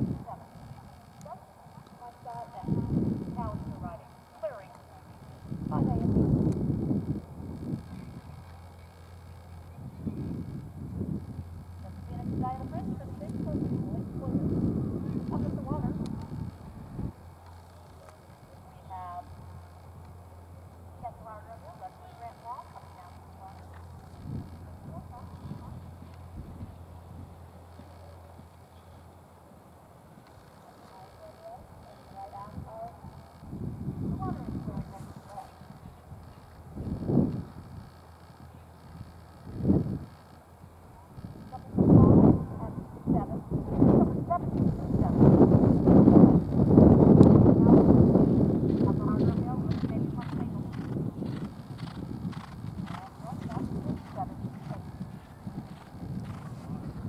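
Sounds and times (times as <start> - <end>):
steady low hum: 0.0 - 57.0.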